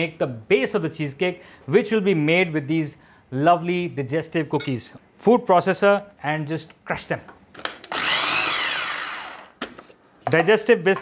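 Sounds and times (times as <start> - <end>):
food processor motor whine: 7.9 - 9.6.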